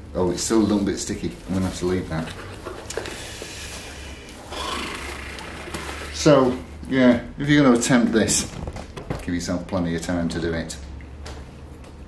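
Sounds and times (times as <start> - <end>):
cling film crinkling: 0.2 - 6.8.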